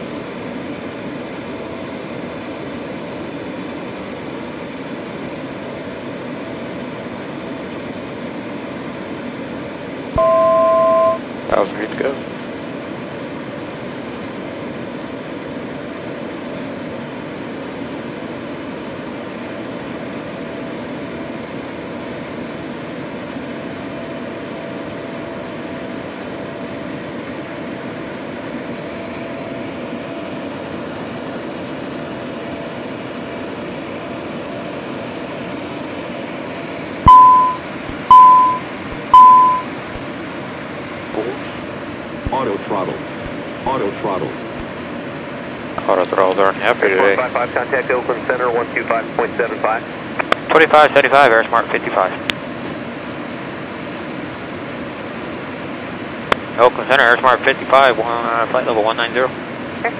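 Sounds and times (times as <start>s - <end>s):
jet engines and airflow hiss: 0.0s - 59.9s
short electronic blips: 10.2s - 11.2s, 37.1s - 39.7s
two-tone electronic beep: 10.2s - 11.2s, 37.1s - 39.7s.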